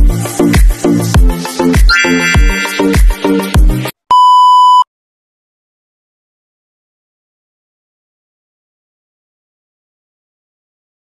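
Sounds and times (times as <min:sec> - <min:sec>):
electronic music with heavy bass: 0:00.0 - 0:03.9
high electronic beep: 0:01.9 - 0:03.4, 0:04.1 - 0:04.8.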